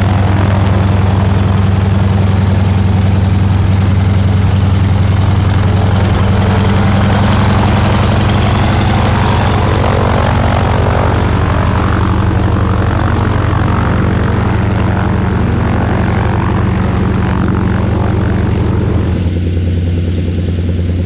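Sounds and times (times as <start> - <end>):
propeller plane engine running: 0.0 - 21.0.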